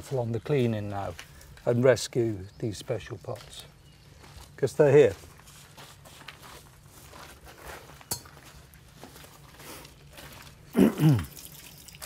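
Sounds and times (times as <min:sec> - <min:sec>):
footsteps on gravel: 0:00.0 - 0:02.0, 0:02.8 - 0:10.9.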